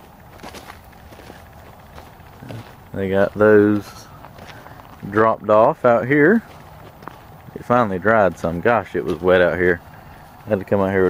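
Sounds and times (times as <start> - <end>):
footsteps on loose dirt: 0.0 - 11.0.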